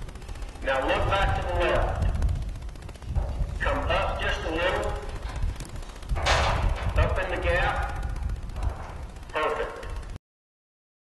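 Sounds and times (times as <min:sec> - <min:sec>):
heavy low rumble: 0:00.0 - 0:10.2
muffled speech: 0:00.6 - 0:02.2, 0:03.6 - 0:05.2, 0:06.4 - 0:08.1, 0:09.3 - 0:10.0.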